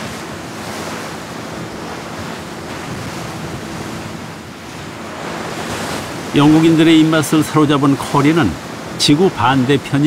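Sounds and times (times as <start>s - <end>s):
waves churning and breaking: 0.0s - 10.0s.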